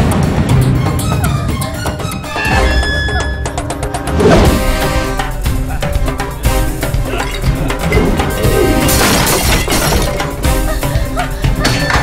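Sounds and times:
film music: 0.0s - 12.0s
glass bottle smashing: 8.8s - 10.2s.

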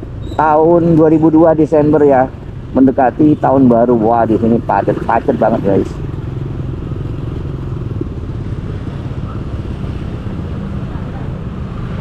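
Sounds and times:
other motorbikes in traffic: 0.0s - 12.0s.

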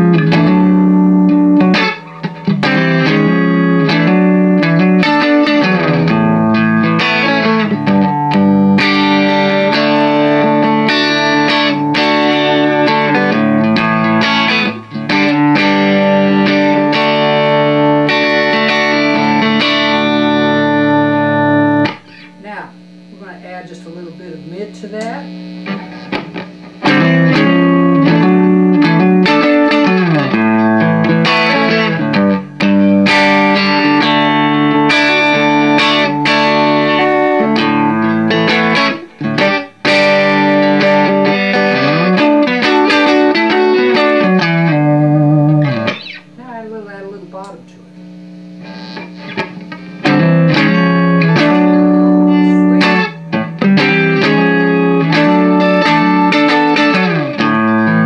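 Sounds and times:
clean electric guitar: 0.0s - 58.0s.

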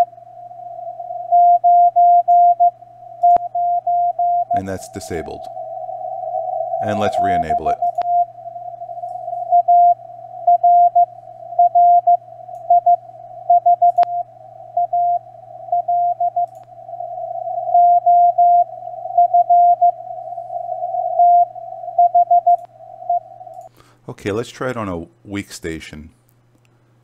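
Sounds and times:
morse code tone: 0.0s - 23.6s
faint low hum: 0.0s - 27.0s
radio hiss: 4.5s - 9.5s
sharp click: 13.8s - 14.2s.

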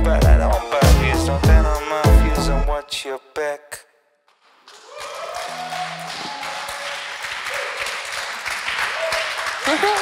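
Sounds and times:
people clapping and cheering: 4.3s - 10.0s.

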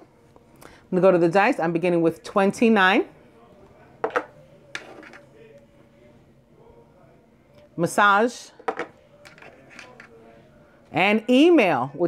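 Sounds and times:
metal dice knocking on table: 8.7s - 10.1s.

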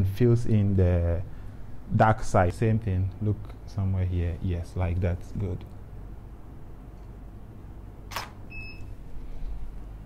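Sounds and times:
camera shutter click: 8.1s - 8.4s.

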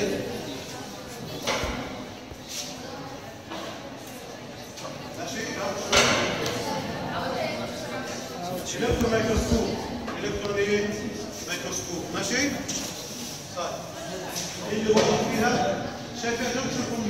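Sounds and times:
indistinct talking in echoing room: 0.0s - 17.0s.

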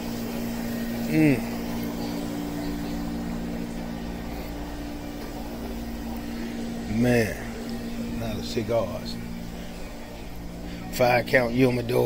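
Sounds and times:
machinery humming: 0.0s - 12.0s.

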